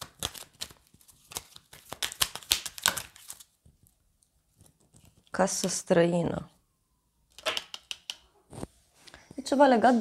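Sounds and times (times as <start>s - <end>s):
cards being shuffled: 0.0s - 3.9s.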